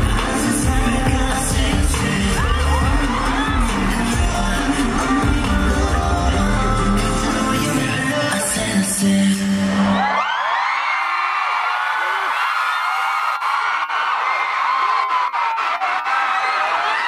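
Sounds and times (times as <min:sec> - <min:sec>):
loud concert music: 0:00.0 - 0:10.4, 0:11.9 - 0:17.0
crowd screaming and cheering: 0:00.0 - 0:17.0.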